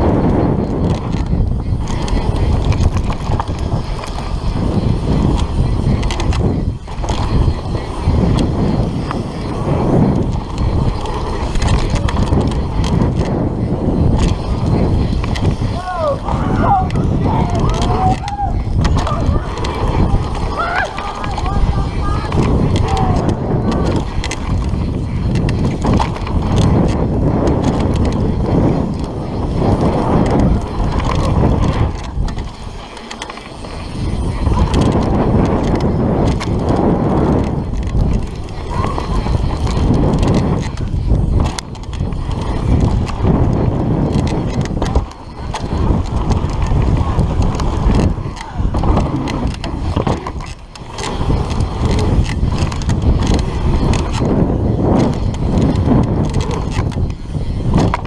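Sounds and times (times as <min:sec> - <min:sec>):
bike rattling over bumps: 0:00.0 - 0:58.0
tyres rolling over dirt: 0:00.0 - 0:58.0.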